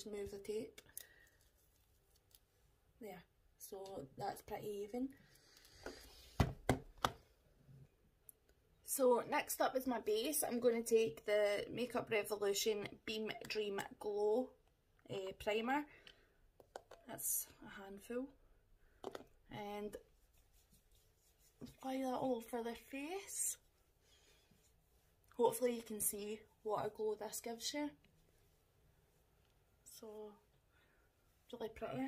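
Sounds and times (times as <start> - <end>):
woman speaking: 0.0 - 0.8, 3.0 - 5.2, 8.9 - 15.9, 17.1 - 18.4, 19.5 - 20.0, 21.6 - 23.7, 25.4 - 28.0, 29.9 - 30.4, 31.5 - 32.0
fingertips rubbing skin: 20.0 - 21.9.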